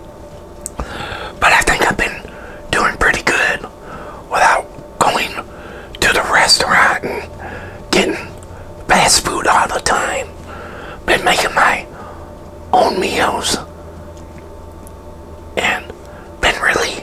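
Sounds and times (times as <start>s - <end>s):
man whispering: 0.8s - 10.4s, 11.0s - 12.0s, 12.7s - 13.7s, 15.6s - 17.0s.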